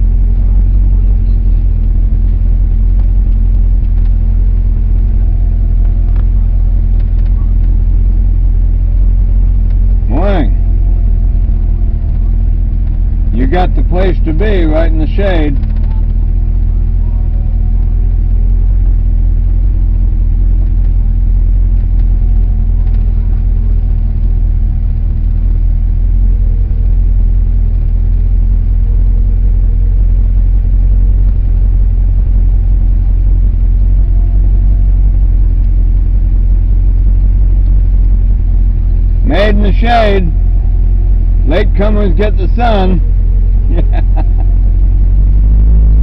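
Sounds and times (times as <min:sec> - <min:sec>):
car engine rumbling from inside: 0:00.0 - 0:46.0.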